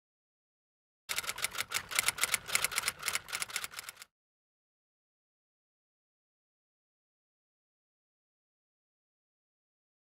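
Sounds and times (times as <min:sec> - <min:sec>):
typewriter keys clattering: 0:01.1 - 0:04.0.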